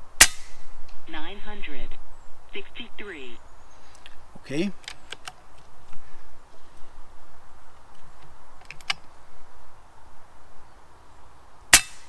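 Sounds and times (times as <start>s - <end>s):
faint outdoor hiss: 0.0s - 12.0s
air rifle action clicking: 8.6s - 9.0s.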